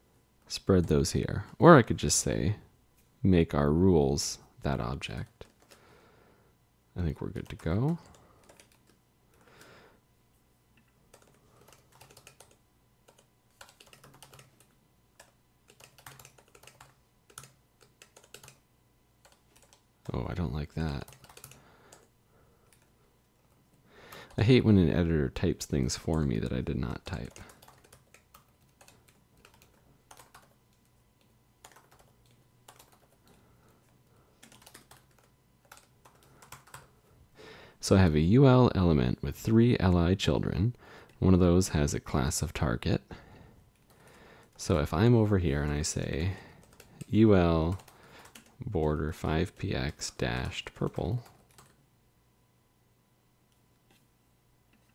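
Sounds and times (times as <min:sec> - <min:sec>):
faint low hum: 0:00.0 - 0:54.9
faint keyboard typing: 0:00.4 - 0:01.6, 0:05.0 - 0:05.9, 0:07.0 - 0:09.8, 0:10.7 - 0:24.6, 0:25.6 - 0:37.1, 0:43.7 - 0:44.9, 0:45.6 - 0:51.9, 0:53.5 - 0:54.1, 0:54.7 - 0:54.9.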